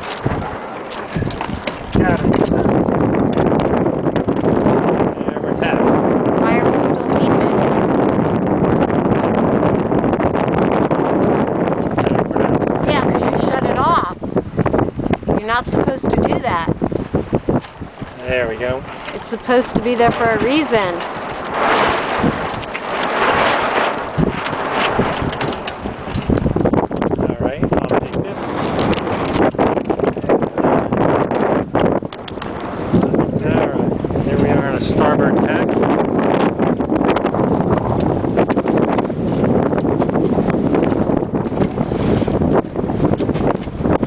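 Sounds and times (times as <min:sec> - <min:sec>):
wind buffeting microphone: 0:00.0 - 0:44.0.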